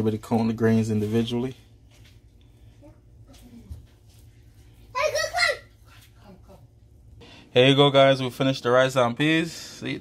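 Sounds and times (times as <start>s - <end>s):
child's high-pitched voice: 4.9s - 6.1s.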